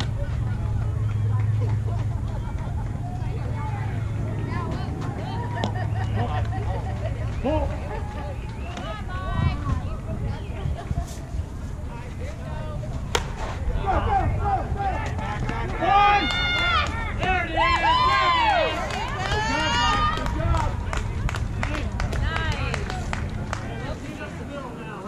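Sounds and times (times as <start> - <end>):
players shouting: 12.5 - 20.9
softball bat hitting ball: 13.1 - 13.6.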